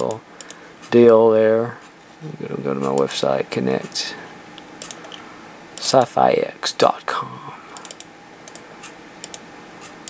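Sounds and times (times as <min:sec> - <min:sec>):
keyboard and mouse clicks: 0:00.0 - 0:00.6, 0:04.8 - 0:05.2, 0:07.7 - 0:10.0.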